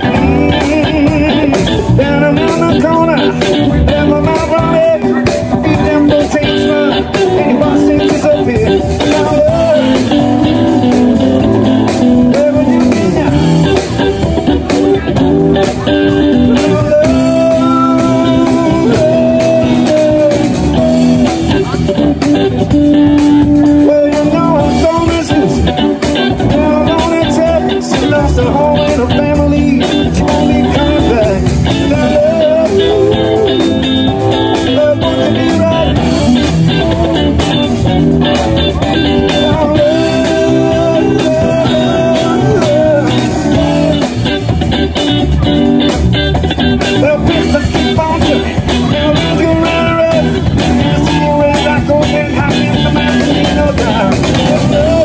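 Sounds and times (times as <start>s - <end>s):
bending electric guitar notes: 0.0s - 55.0s
blues-rock band music: 0.0s - 55.0s.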